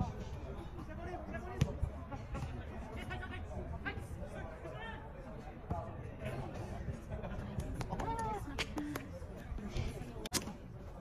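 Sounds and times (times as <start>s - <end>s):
players calling and chattering: 0.0s - 11.0s.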